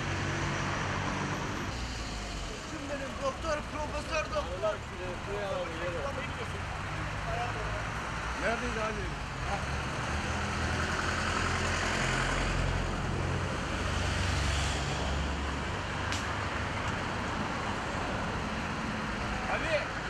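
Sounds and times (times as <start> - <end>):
road traffic rumble: 0.0 - 20.0
vehicles passing: 0.0 - 20.0.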